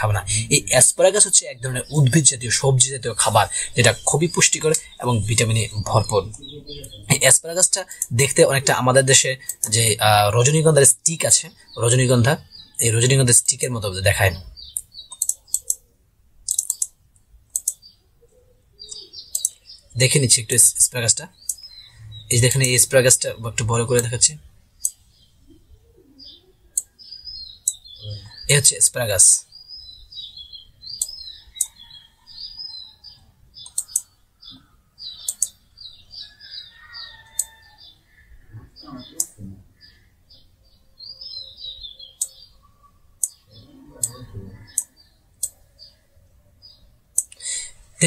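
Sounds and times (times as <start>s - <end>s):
small birds chirping: 0.0s - 48.0s
computer mouse clicks: 14.8s - 15.8s, 16.5s - 17.8s, 18.9s - 19.6s, 31.0s - 31.7s, 33.6s - 34.1s, 35.2s - 35.6s, 37.3s - 37.5s, 42.2s - 42.4s, 47.1s - 47.4s.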